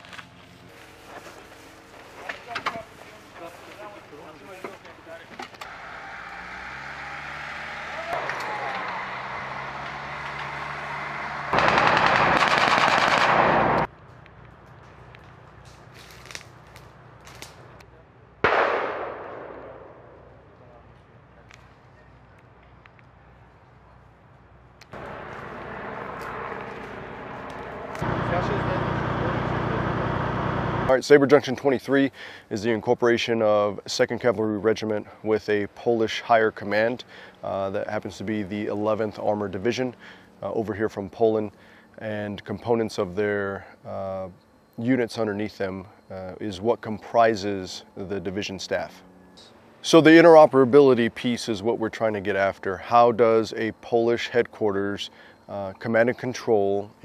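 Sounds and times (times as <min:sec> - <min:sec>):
rifle and machine-gun fire: 0:11.5 - 0:13.9, 0:18.4 - 0:20.2
sharp blast: 0:11.5 - 0:13.9, 0:18.4 - 0:20.4.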